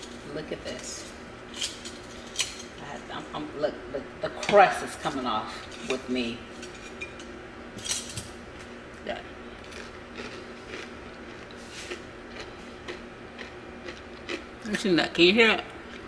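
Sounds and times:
faint room hum: 0.0s - 16.0s.

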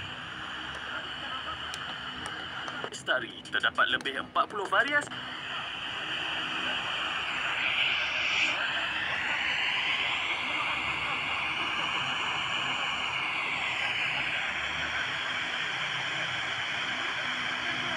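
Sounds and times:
faint broadcast speech: 0.0s - 17.9s
radio static hiss: 0.0s - 17.9s.

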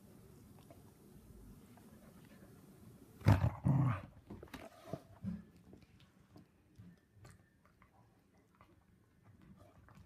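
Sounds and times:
dog growling: 3.2s - 4.2s.

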